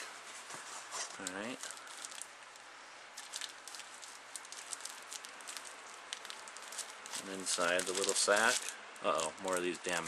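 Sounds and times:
plastic sack rustling and crackling: 0.0 - 10.0.

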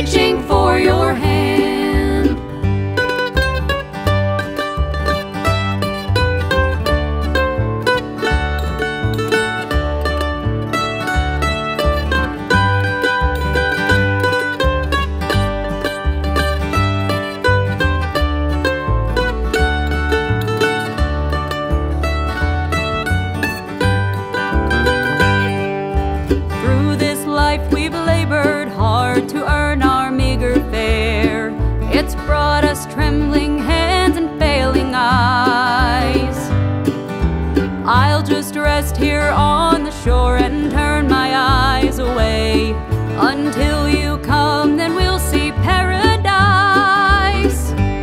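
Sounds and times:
banjo: 0.0 - 48.0
mandolin fast picked runs: 0.0 - 48.0
strummed acoustic guitar: 0.0 - 48.0
upright bass: 0.0 - 48.0
wavering held note: 24.6 - 25.5.

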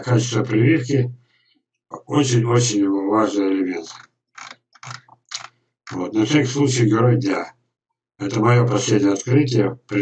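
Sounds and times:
mouse scroll wheel clicking: 3.9 - 6.0.

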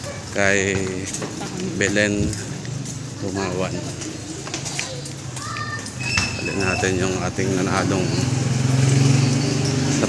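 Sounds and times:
small engine droning: 7.6 - 10.0.

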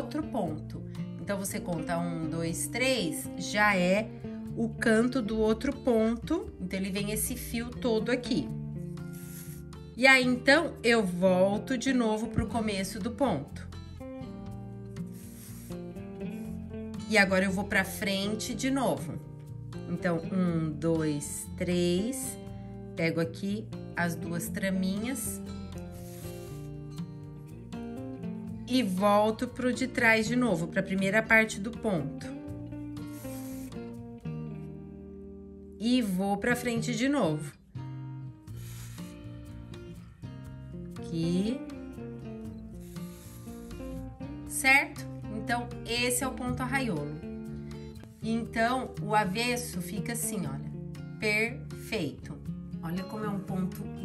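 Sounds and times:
background music with held notes: 0.0 - 54.0
yarn rasping through canvas: 9.0 - 9.9, 15.0 - 16.8, 25.1 - 27.2, 33.0 - 34.0, 38.5 - 40.0, 42.6 - 44.2.

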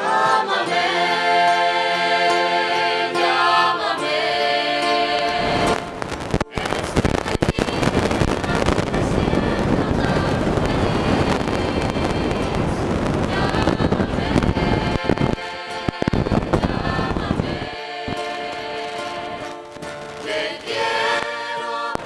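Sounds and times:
choir singing with guitar: 0.0 - 22.0
dense crackling noise: 5.1 - 22.0.

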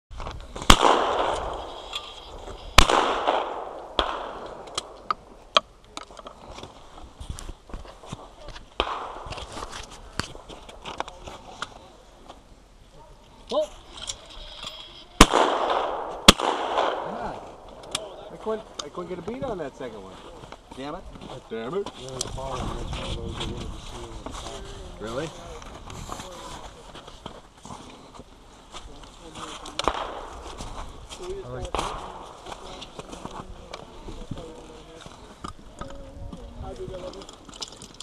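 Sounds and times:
shotgun shots echoing: 0.6 - 5.4, 8.8 - 9.6, 15.2 - 18.1, 29.8 - 30.5, 31.7 - 32.4.

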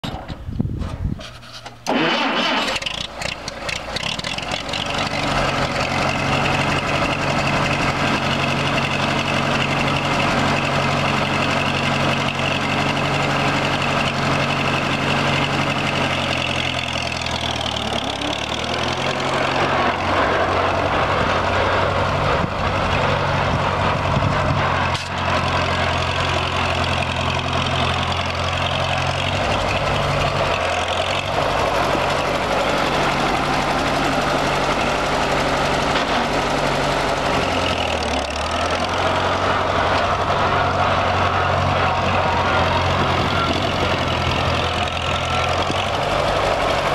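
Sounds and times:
tractor engine running: 0.0 - 46.9.

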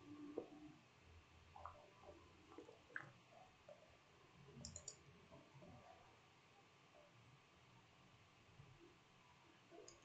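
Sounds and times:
keyboard typing: 4.6 - 5.0.

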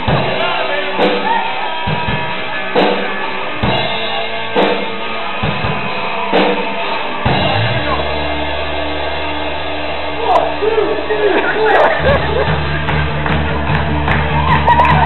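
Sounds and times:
drum kit accents: 0.0 - 15.0
live rock band playing: 0.0 - 15.0.

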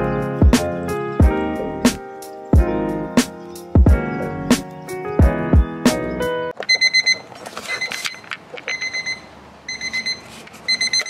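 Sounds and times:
alarm clock high beeps: 6.7 - 11.0.

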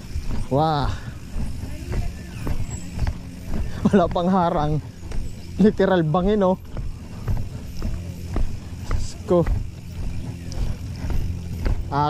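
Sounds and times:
bicycle road noise rumble: 0.0 - 12.0.

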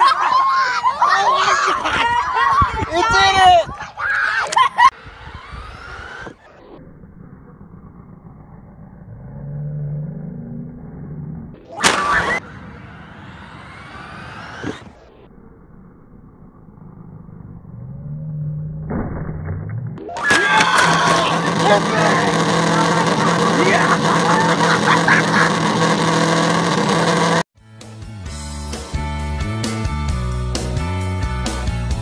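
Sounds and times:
rc truck motor whine: 4.9 - 10.5, 11.8 - 18.7, 20.3 - 27.5
loud sudden burst: 11.7 - 15.0.

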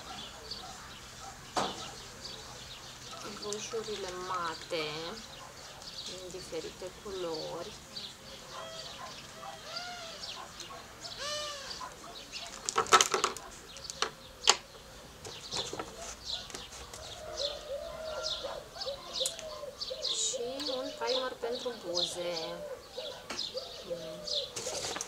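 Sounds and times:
birds calling and chirping: 0.0 - 25.0.

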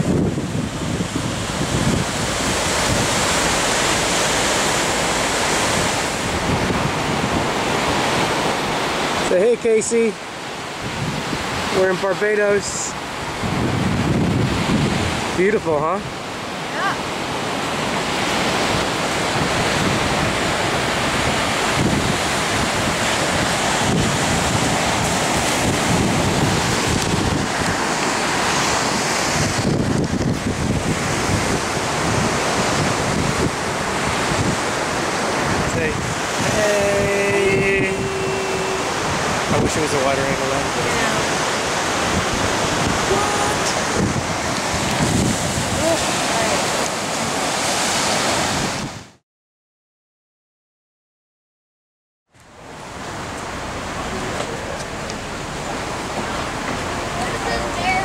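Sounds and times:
wind buffeting microphone: 0.0 - 9.3, 10.2 - 49.2
surf breaking on beach: 0.0 - 49.2, 52.4 - 58.0.

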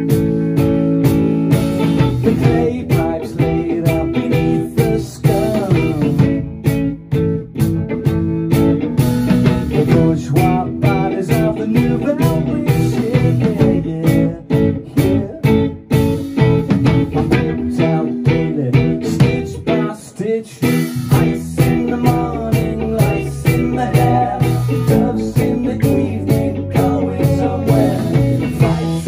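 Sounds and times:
bass guitar: 0.0 - 29.0
drums with steady beat: 0.0 - 29.0
electric guitar: 0.0 - 29.0.

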